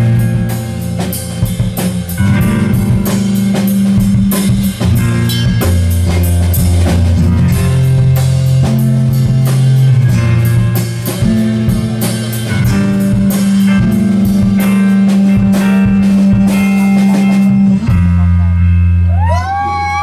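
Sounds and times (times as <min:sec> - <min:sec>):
drum kit beat: 0:00.0 - 0:20.0
electric guitar: 0:00.0 - 0:20.0
low bass notes: 0:00.0 - 0:20.0.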